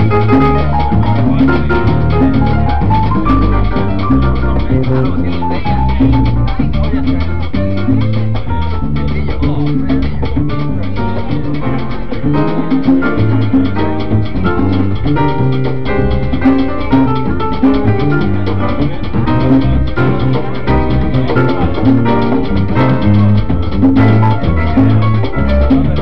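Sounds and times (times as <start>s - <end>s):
congas and timbales: 0.0s - 26.0s
electric bass: 0.0s - 26.0s
piano figures: 0.0s - 26.0s.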